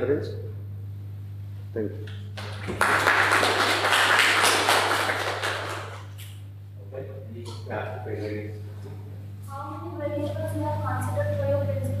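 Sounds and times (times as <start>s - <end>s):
steady low hum: 0.0s - 12.0s
audience applauding: 2.4s - 6.2s.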